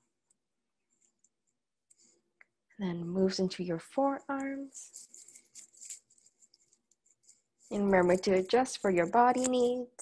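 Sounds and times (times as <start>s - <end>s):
person speaking: 2.8s - 6.2s, 7.6s - 10.0s.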